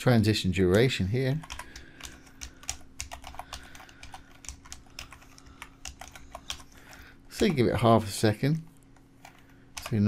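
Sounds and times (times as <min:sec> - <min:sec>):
faint steady hum: 0:00.0 - 0:10.0
computer keyboard typing: 0:01.3 - 0:07.6, 0:09.2 - 0:10.0.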